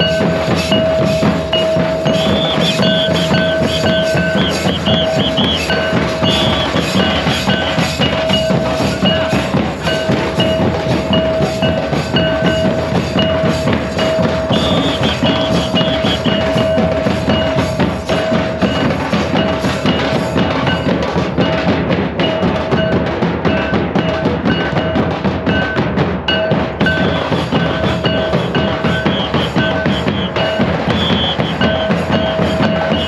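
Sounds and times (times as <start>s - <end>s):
long held tone: 0.0s - 9.3s, 14.0s - 17.7s
barrel drums beaten with sticks: 0.0s - 33.0s.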